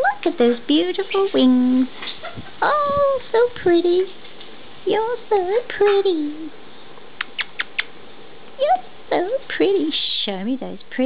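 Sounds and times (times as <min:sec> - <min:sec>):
parrot clicking: 0:07.2 - 0:08.0.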